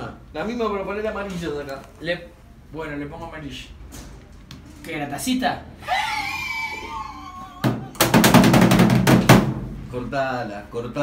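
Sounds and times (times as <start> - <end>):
harsh burst with rapid knocking: 8.0 - 9.6.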